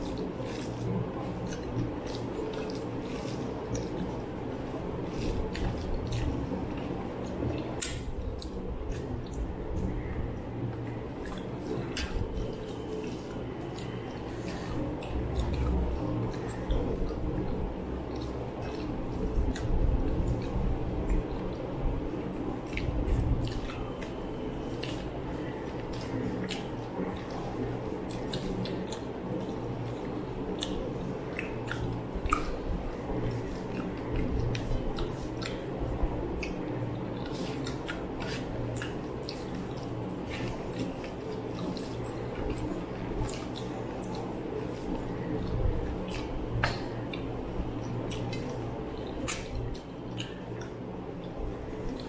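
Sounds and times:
low room hum: 0.0 - 52.0
mouths chewing: 0.0 - 52.0.

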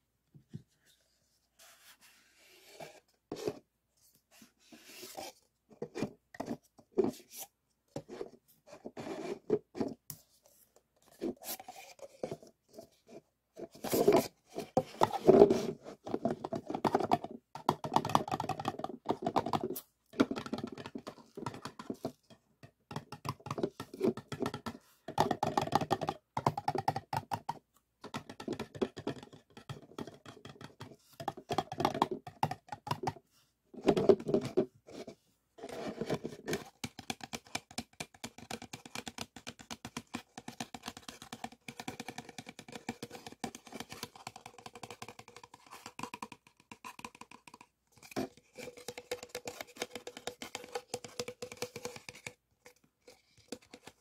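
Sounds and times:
paper cups scraped and tapped: 4.3 - 33.2, 33.8 - 54.0.

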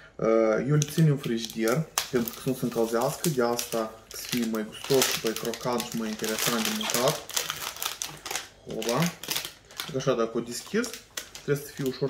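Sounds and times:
plastic wrapper crackling: 0.6 - 12.0.

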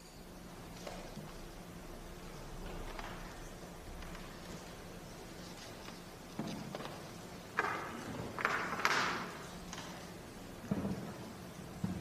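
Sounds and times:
room noise: 0.0 - 12.0.

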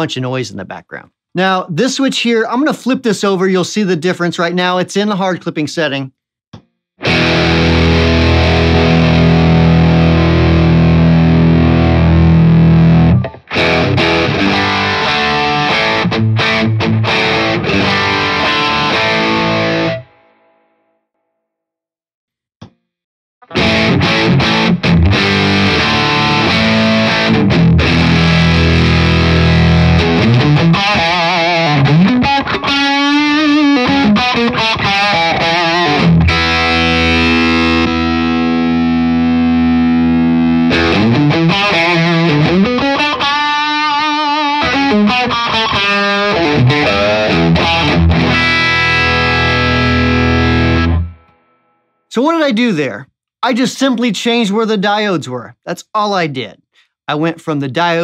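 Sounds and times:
distorted electric guitar: 7.0 - 20.6, 23.4 - 51.7.

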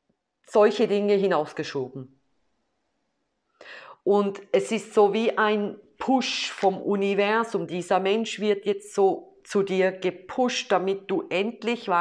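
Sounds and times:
woman speaking: 0.5 - 2.2, 4.0 - 12.0
breathy in-breath: 3.6 - 4.0.

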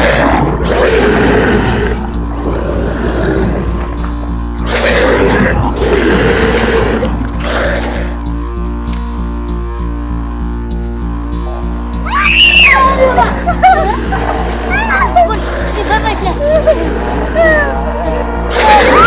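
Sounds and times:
monster growls: 0.0 - 4.0, 4.6 - 8.2, 13.8 - 19.0
dramatic music with low drone: 0.0 - 19.0.

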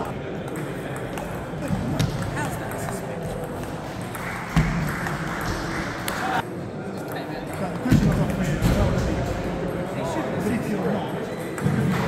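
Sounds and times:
table tennis ball hits and bounces: 0.0 - 6.4, 11.3 - 12.0.

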